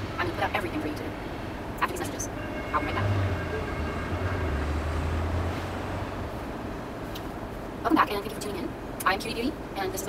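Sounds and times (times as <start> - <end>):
steady background hiss: 3.3 - 10.0.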